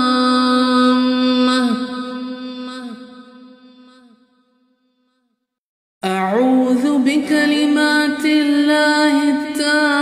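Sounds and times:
person chanting with reverb: 0:00.0 - 0:04.4, 0:06.0 - 0:10.0.

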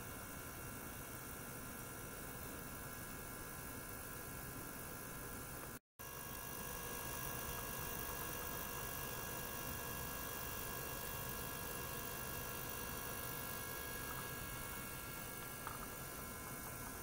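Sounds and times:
water pump hum and hiss: 0:00.0 - 0:17.0.

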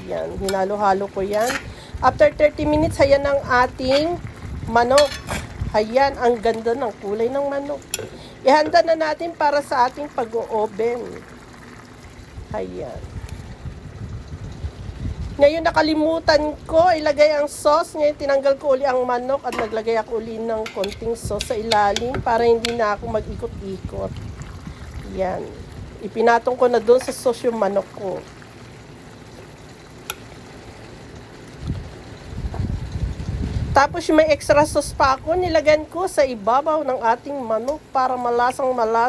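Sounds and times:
low uneven rumble: 0:00.0 - 0:39.0.

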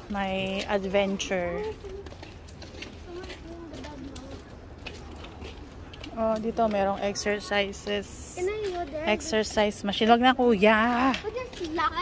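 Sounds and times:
footsteps on pavement: 0:00.0 - 0:12.0.

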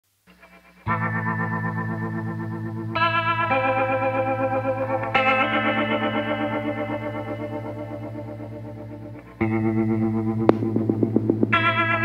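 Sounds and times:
shimmering guitar chords: 0:00.3 - 0:12.0.

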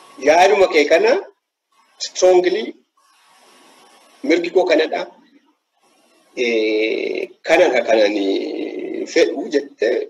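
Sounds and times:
person talking: 0:04.2 - 0:05.2.

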